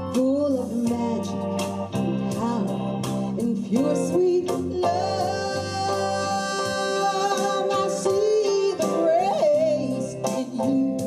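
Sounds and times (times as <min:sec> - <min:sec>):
instrumental accompaniment: 0:00.0 - 0:11.0
woman singing into a microphone: 0:00.0 - 0:11.0.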